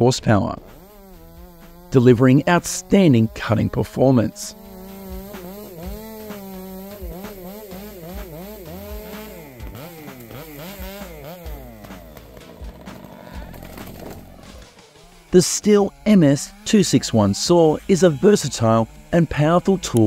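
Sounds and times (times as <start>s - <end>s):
background music: 0.0s - 20.0s
chainsaw cutting: 0.0s - 20.0s.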